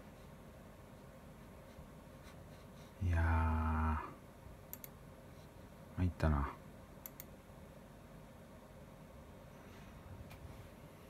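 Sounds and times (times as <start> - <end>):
computer mouse double-clicks: 4.7 - 5.0, 7.0 - 7.3.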